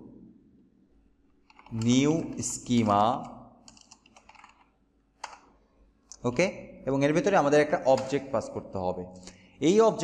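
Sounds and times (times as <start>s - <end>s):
computer keyboard typing: 1.4s - 5.5s.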